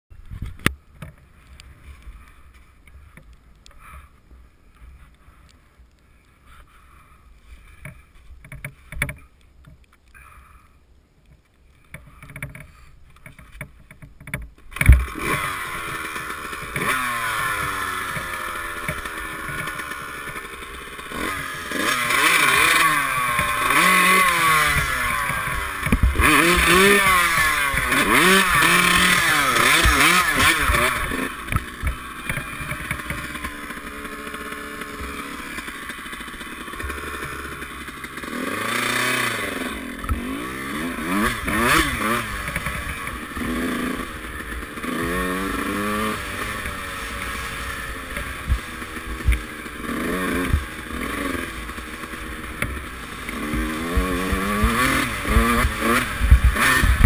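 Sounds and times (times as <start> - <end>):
motorcycle engine revving: 12.1 - 57.0.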